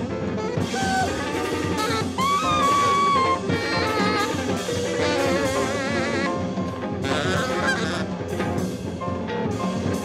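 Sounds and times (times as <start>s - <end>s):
bass: 0.0s - 10.0s
drums: 0.0s - 10.0s
guitar: 0.0s - 10.0s
horn blowing high wavering notes: 0.5s - 8.2s.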